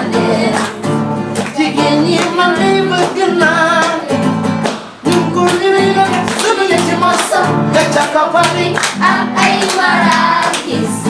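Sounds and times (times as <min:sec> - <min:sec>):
children and man singing: 0:00.0 - 0:04.4, 0:05.0 - 0:11.0
acoustic guitar: 0:00.0 - 0:11.0
hand clapping: 0:00.4 - 0:10.9.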